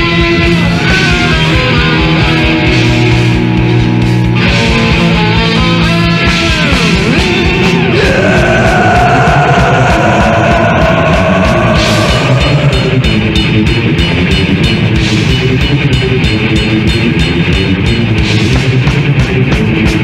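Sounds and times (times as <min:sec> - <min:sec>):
distorted guitars: 0:00.0 - 0:20.0
fast drumming: 0:06.6 - 0:20.0.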